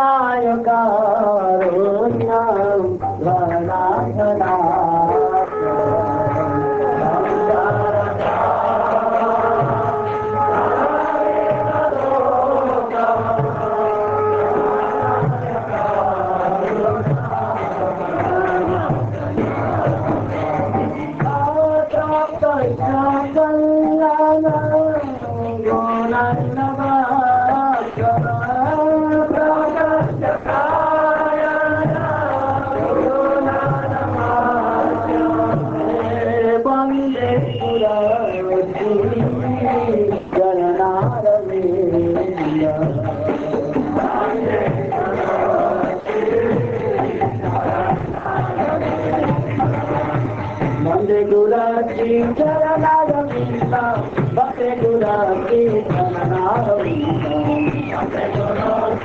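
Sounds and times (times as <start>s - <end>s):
group chanting a devotional song: 0.0s - 59.0s.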